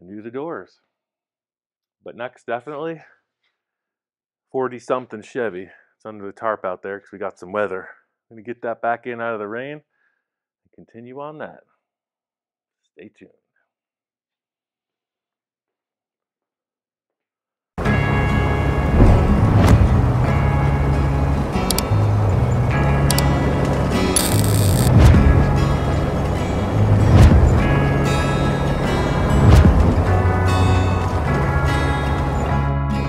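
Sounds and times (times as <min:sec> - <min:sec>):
loud background music with bass: 0:17.8 - 0:33.0.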